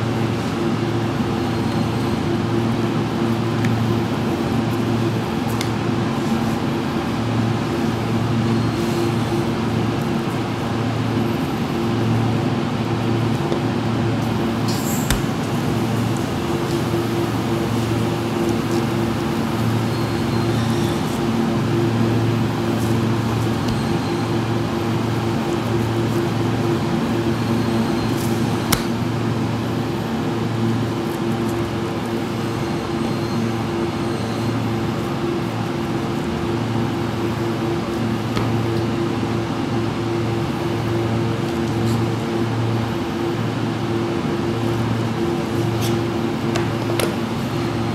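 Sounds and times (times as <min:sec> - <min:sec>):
low machine hum: 0:00.0 - 0:47.9.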